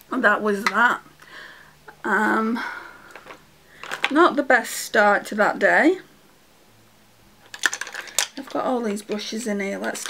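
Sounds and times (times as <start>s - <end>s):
makeup brushes clattering: 3.1s - 4.2s, 7.4s - 10.0s.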